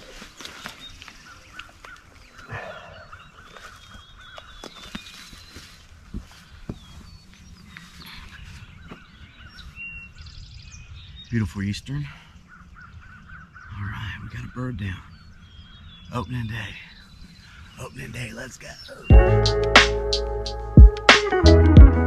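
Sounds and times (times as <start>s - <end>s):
birds chirping and warbling: 0.0s - 20.5s.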